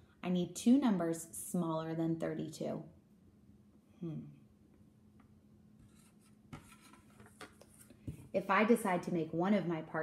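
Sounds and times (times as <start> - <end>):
marker writing on whiteboard: 5.8 - 8.2.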